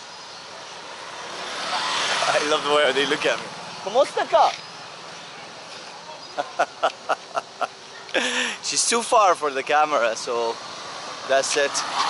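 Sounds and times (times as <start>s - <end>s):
motorcycle approaching: 0.8s - 6.0s.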